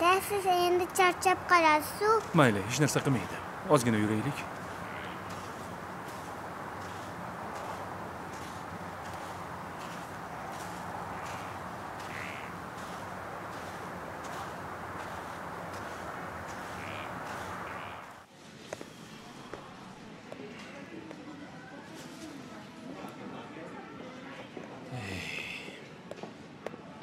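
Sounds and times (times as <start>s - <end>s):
outdoor background hiss: 0.0s - 20.2s
crow cawing: 4.5s - 7.0s, 8.4s - 18.2s.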